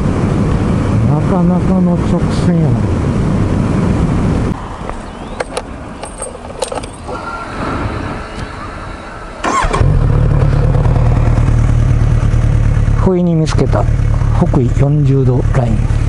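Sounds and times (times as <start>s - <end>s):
motorcycle engine: 9.4s - 16.0s.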